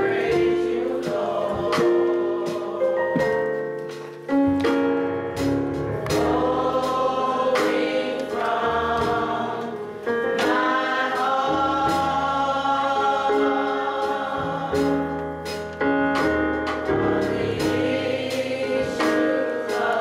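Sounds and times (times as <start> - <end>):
gospel choir singing in harmony: 0.0 - 20.0.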